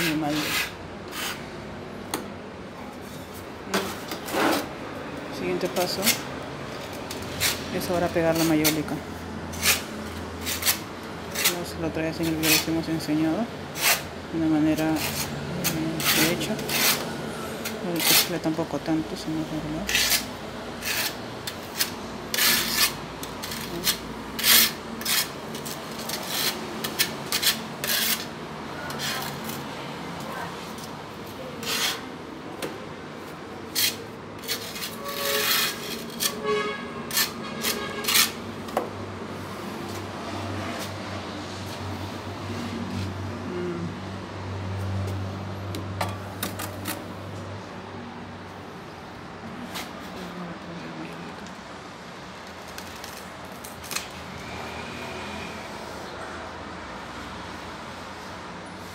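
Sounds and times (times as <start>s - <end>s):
trowel scraping mortar on tile: 0.0s - 1.5s, 2.9s - 4.7s, 5.8s - 12.9s, 13.7s - 14.1s, 14.7s - 18.6s, 19.8s - 32.7s, 33.7s - 38.9s.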